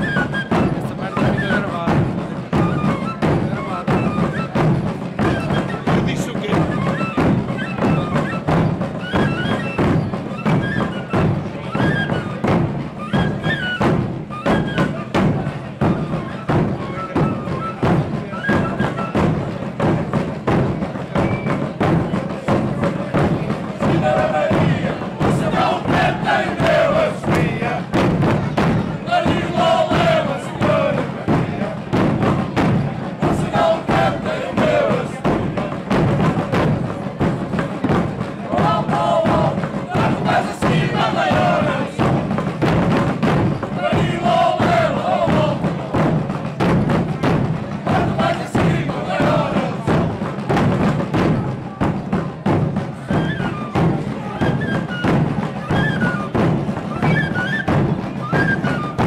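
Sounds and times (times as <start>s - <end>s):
bass drums beating: 0.0s - 11.7s, 19.2s - 55.6s
drummers singing together: 0.0s - 59.0s
side drum: 0.0s - 59.0s.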